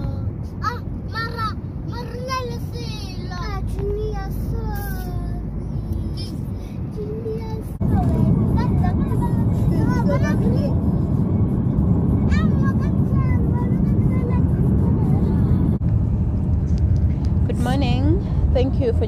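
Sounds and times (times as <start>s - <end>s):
vehicle road and engine rumble: 0.0s - 19.0s.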